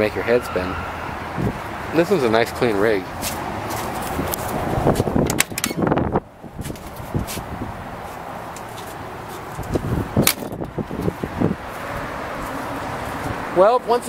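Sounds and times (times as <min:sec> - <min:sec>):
car door latch clicks: 0:05.2 - 0:05.9.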